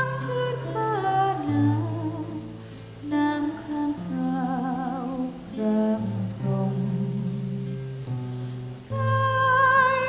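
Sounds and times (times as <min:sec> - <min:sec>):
woman singing slow song: 0:00.0 - 0:08.2, 0:08.9 - 0:10.0
acoustic guitar: 0:00.0 - 0:10.0.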